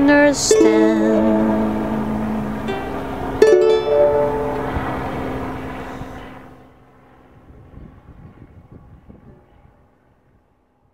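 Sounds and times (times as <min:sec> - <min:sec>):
strummed ukulele chord: 0:00.0 - 0:06.2.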